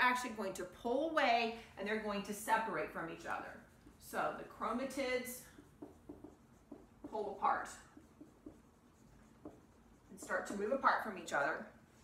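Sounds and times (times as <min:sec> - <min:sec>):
marker writing on whiteboard: 0:03.1 - 0:12.0.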